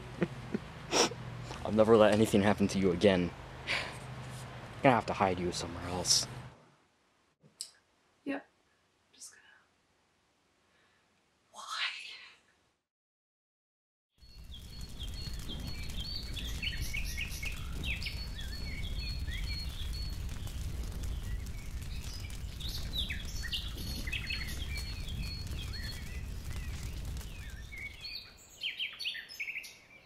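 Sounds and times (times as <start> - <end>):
small birds chirping: 14.2 - 30.0
low outdoor rumble: 14.3 - 28.1.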